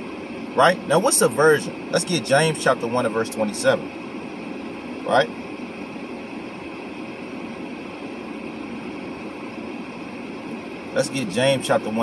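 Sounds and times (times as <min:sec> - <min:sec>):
car ventilation hum and hiss: 0:00.0 - 0:12.0.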